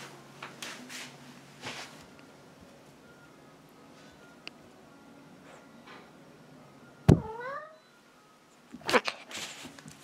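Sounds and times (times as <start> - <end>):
cat meowing: 7.2 - 7.9.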